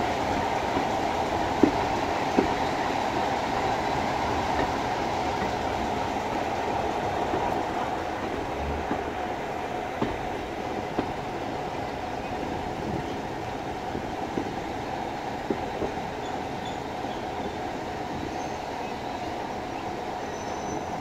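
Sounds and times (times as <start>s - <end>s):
train carriage rumbling on track: 0.0s - 21.0s.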